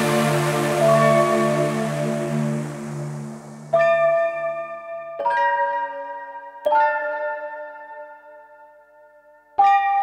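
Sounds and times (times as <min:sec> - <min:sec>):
low bass note: 0:00.0 - 0:04.0
sustained synth chords: 0:00.0 - 0:05.2
bright bell-like note: 0:03.7 - 0:10.0.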